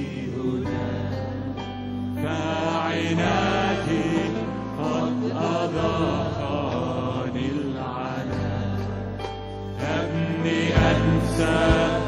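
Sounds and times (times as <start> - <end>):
group of singers: 0.0 - 12.0
bass guitar: 8.3 - 12.0.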